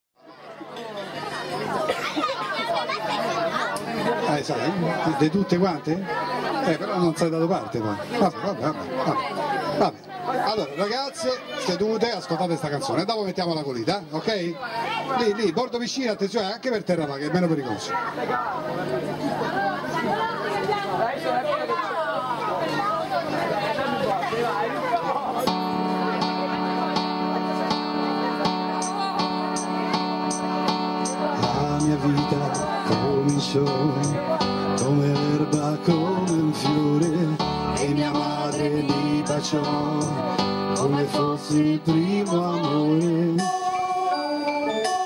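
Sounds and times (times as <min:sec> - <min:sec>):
babble of conversation: 0:00.2 - 0:45.0.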